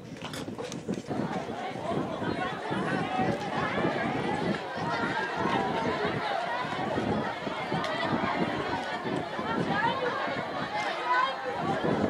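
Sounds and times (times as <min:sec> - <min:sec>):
crowd of children babbling: 0:00.0 - 0:12.0.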